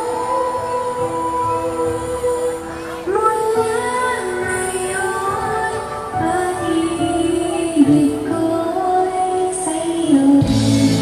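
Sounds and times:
woman singing a pop ballad: 0.0s - 11.0s
backing music: 4.2s - 11.0s.

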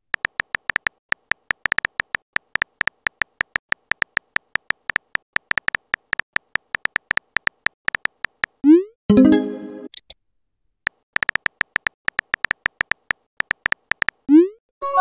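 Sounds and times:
keyboard typing clicks: 0.1s - 8.6s, 10.9s - 14.3s.

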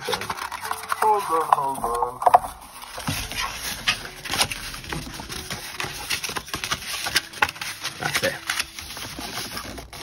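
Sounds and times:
cardstock rustling and crackling: 0.0s - 10.0s
sharp crinkles of card: 0.0s - 10.0s.

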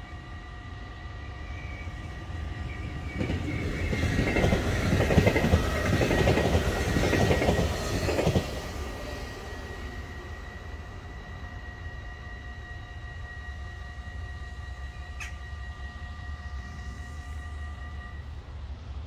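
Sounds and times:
electric train passing at speed: 0.0s - 19.0s
wheels clattering on rails: 2.8s - 9.3s.

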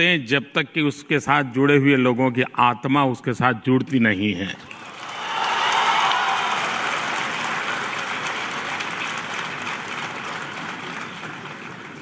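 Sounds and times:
audience applause: 4.8s - 12.0s.

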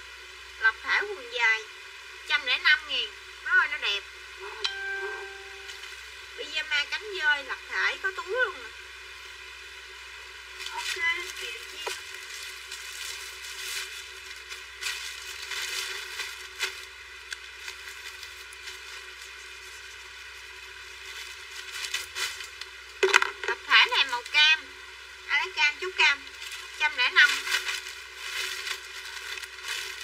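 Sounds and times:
woman's voice: 0.6s - 1.7s, 2.3s - 5.2s, 6.4s - 8.7s, 10.7s - 12.0s, 23.5s - 24.7s, 25.3s - 27.5s.

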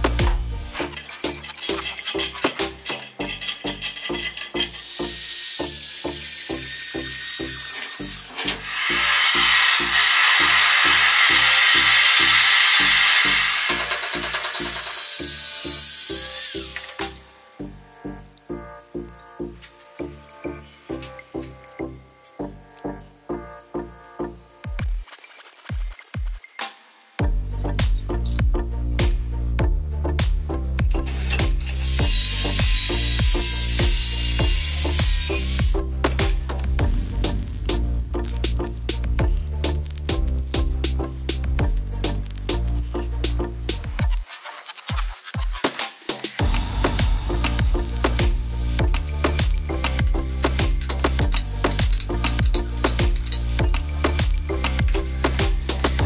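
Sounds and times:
backing track with beat: 0.0s - 0.8s, 25.7s - 56.0s
angle grinder grinding metal: 0.0s - 17.2s, 30.9s - 36.8s, 44.7s - 56.0s
gas torch hissing: 3.3s - 17.3s, 31.1s - 36.6s, 46.0s - 48.8s.

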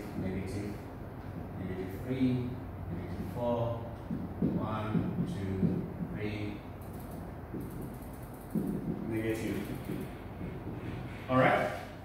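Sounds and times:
marker squeaking on whiteboard: 7.0s - 11.3s.

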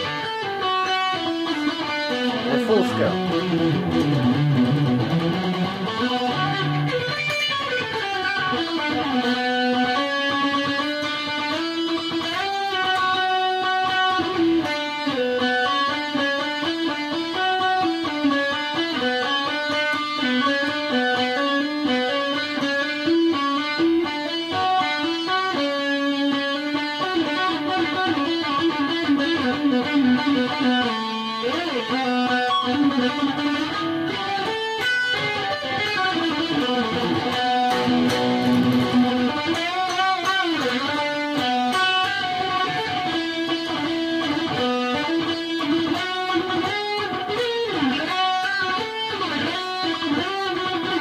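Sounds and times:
distorted electric guitar melody: 0.0s - 51.0s.

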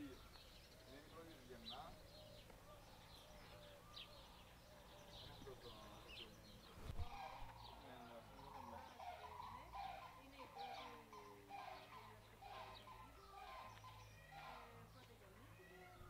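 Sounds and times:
faint bird calls: 0.0s - 16.0s.

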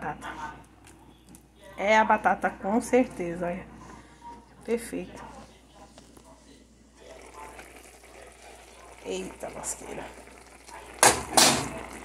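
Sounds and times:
sauce bubbling hiss: 7.0s - 12.0s.

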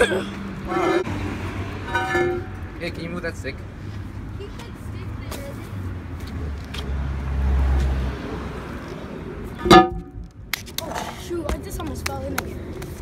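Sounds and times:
manhole cover rumbling: 0.6s - 2.9s, 9.6s - 10.4s
metallic clang of manhole cover: 1.8s - 2.6s, 9.6s - 10.2s.

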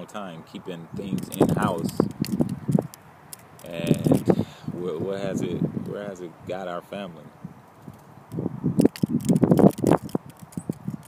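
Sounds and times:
loose flap flapping and rustling: 1.1s - 4.3s, 7.8s - 11.0s.

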